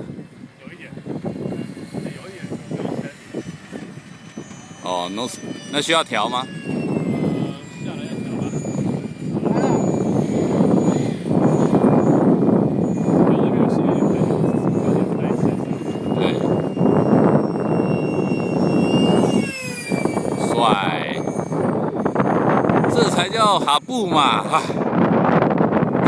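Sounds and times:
model jet high whine: 0.0 - 26.0
wind buffeting microphone: 0.0 - 26.0.

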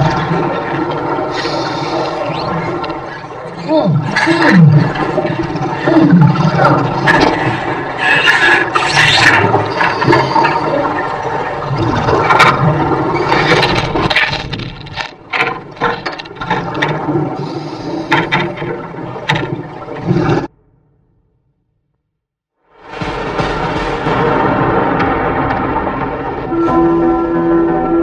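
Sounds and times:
underwater water noise and bubbling: 0.0 - 20.7
clicks and knocks: 13.3 - 17.0.

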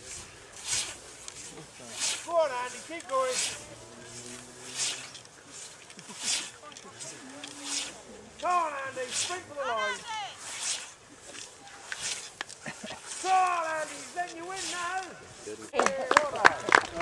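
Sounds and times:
scythe swishing through grass: 0.0 - 15.7
voices calling out: 0.0 - 17.0.

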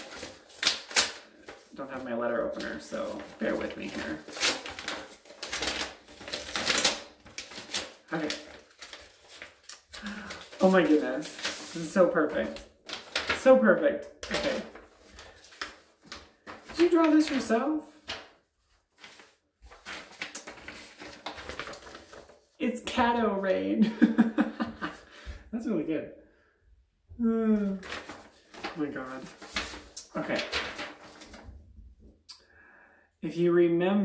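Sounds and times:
paper envelope tearing: 0.0 - 22.5, 27.6 - 31.4.

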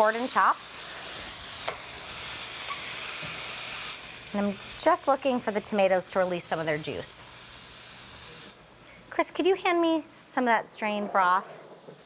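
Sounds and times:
vegetables sizzling in oil: 0.0 - 8.6.

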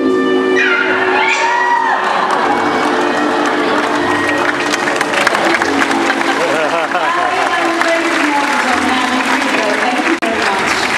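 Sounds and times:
show music: 0.0 - 10.9
audience cheering and applauding: 0.7 - 10.9.

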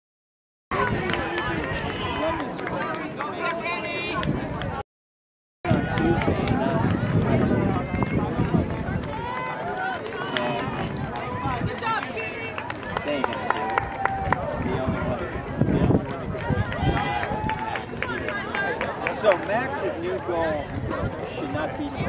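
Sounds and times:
spectators calling out and chattering: 0.7 - 4.8, 5.7 - 22.0
runners' footsteps on track: 5.7 - 20.3.

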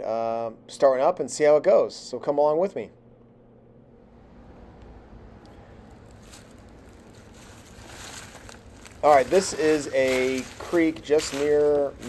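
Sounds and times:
rustling of dry leaves: 5.7 - 12.0.

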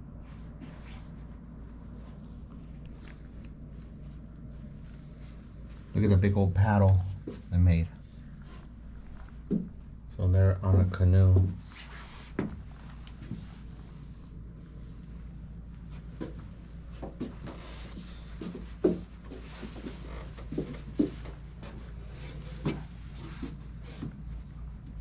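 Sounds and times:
low steady room hum: 0.0 - 25.0.

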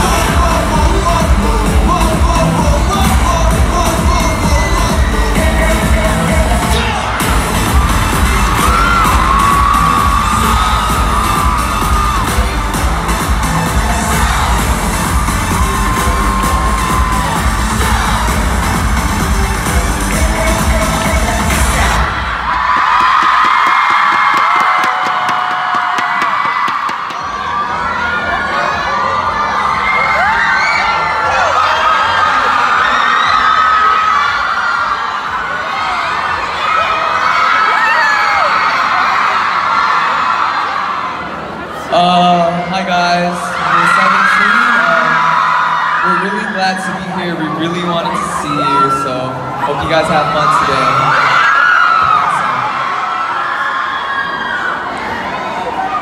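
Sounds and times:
pop music over sound system: 0.0 - 26.7, 41.9 - 52.7
crowd screaming and cheering: 0.0 - 56.0.

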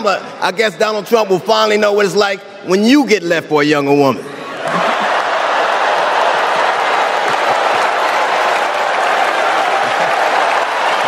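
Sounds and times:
large audience applauding: 4.6 - 11.0.

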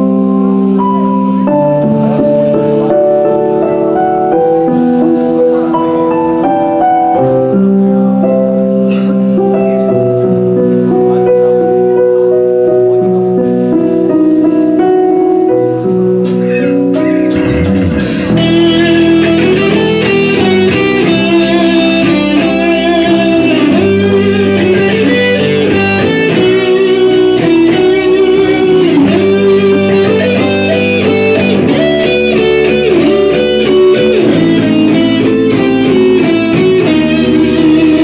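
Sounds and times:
electric guitar bending notes: 0.0 - 38.0
heavy metal band playing: 15.9 - 38.0.

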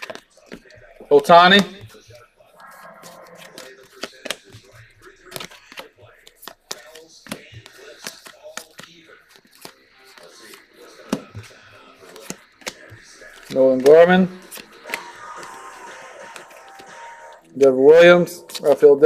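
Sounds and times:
cards clicking and sliding: 0.0 - 0.8, 1.4 - 17.4, 18.4 - 18.8.

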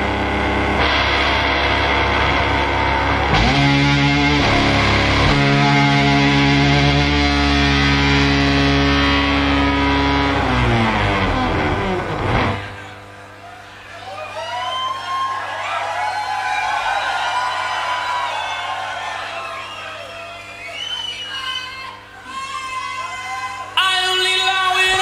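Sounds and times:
distorted bass guitar chord: 0.0 - 13.1
crowd cheering and whooping: 0.8 - 9.7, 10.4 - 24.2.

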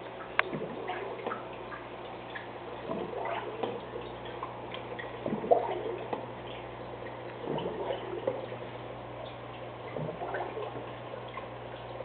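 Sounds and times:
aquarium water gurgling and dripping: 0.0 - 12.0
steady low hum: 0.0 - 12.0.

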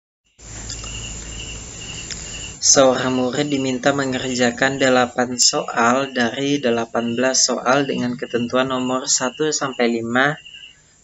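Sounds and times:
cricket chirping: 0.3 - 11.0
room noise hum and hiss: 0.4 - 11.0.

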